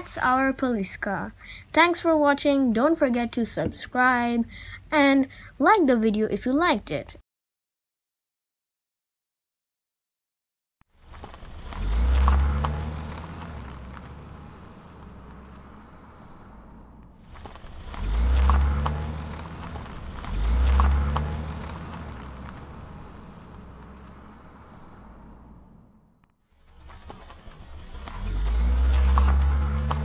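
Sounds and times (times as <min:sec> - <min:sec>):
car engine revving: 0:10.9 - 0:30.0.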